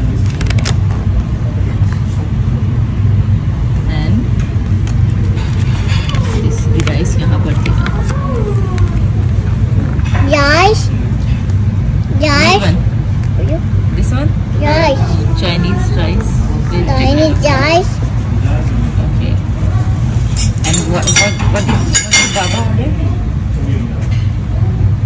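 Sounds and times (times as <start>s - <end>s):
low room rumble: 0.0s - 25.0s
indistinct voices: 5.3s - 25.0s.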